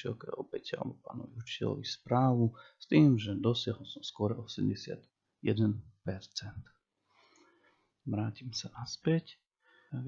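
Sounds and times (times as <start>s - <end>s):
man speaking: 0.0s - 6.8s, 8.0s - 10.0s.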